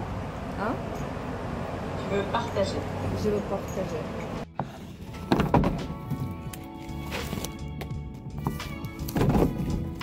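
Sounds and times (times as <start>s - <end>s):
background music: 4.4s - 10.0s
books knocking in wooden slot: 4.6s - 6.2s, 8.4s - 9.9s.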